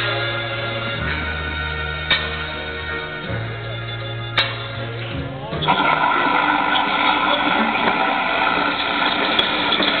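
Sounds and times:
recorded music: 0.0 - 10.0
audience applause and cheering: 5.7 - 10.0.

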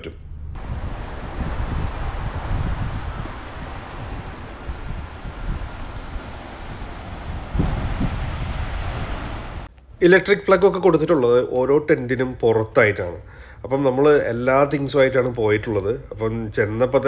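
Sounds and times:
wind buffeting microphone: 0.3 - 9.7.

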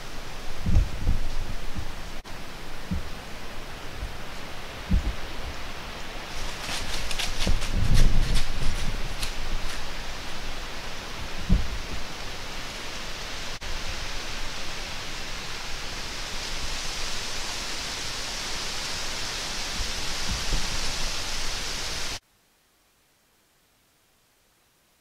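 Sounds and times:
woodland ambience hiss: 0.0 - 25.0.

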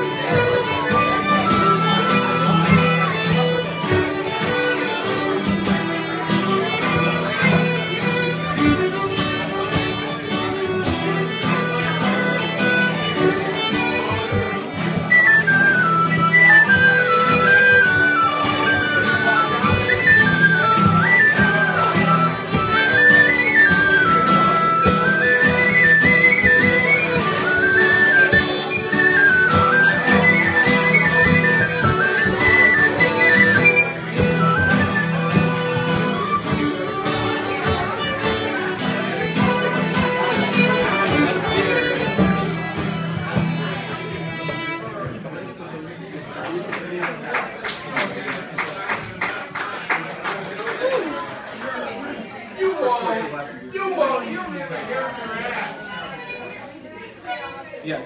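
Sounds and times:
band music with steady beat: 0.0 - 45.3.

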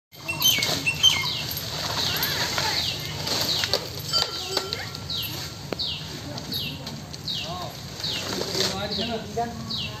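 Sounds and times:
small birds chirping: 0.2 - 10.0.

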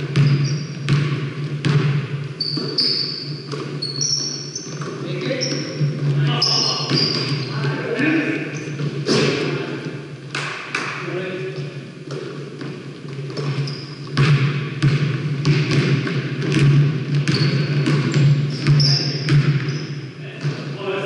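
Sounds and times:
sneaker squeaks: 0.0 - 1.0, 2.3 - 9.5, 11.5 - 14.3, 17.2 - 20.7
basketball bouncing on hardwood floor: 0.0 - 7.8, 12.1 - 19.8, 20.4 - 20.7
players' voices: 4.8 - 10.1, 20.2 - 21.0.

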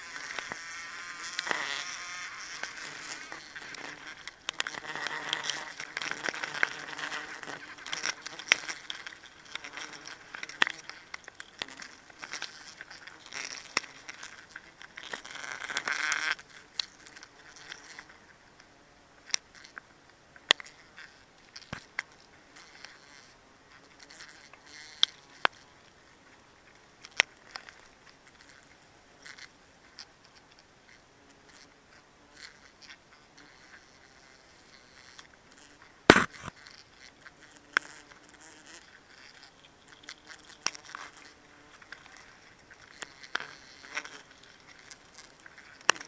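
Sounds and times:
honeybees buzzing: 0.0 - 18.3, 30.9 - 46.0
sharp clicks and taps: 36.1 - 36.5.

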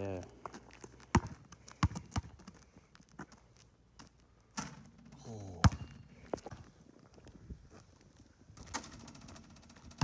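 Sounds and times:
basketball bouncing on asphalt: 0.2 - 6.7, 8.5 - 10.0.

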